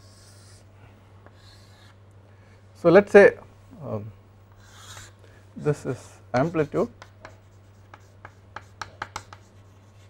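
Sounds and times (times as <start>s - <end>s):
chalk scratching on chalkboard: 0.0s - 0.7s, 1.3s - 2.0s, 4.6s - 10.0s.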